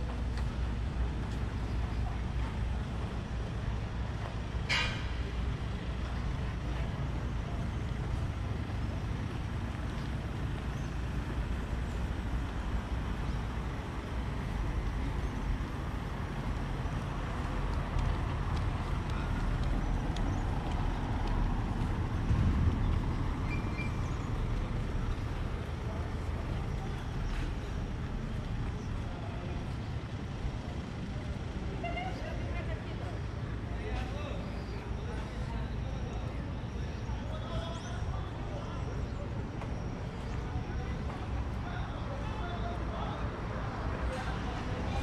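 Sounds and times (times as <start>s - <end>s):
low traffic rumble: 0.0s - 45.0s.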